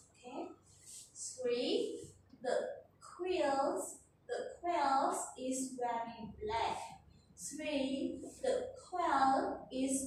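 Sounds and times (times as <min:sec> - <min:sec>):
person talking: 0:03.2 - 0:10.0.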